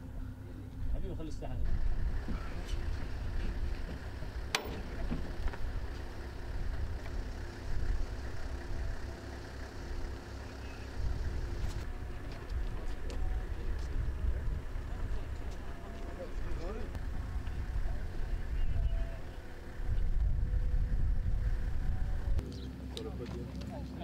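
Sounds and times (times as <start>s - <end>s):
engine running: 0.0s - 24.0s.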